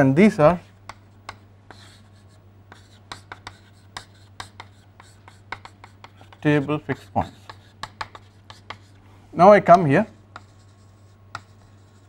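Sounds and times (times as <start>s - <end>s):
chalk tapping and scratching: 0.5s - 9.0s, 10.1s - 12.0s.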